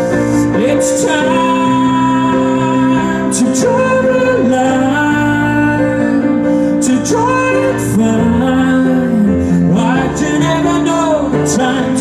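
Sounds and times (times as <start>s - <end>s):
man singing: 0.0s - 12.0s
upright piano chords: 0.0s - 12.0s.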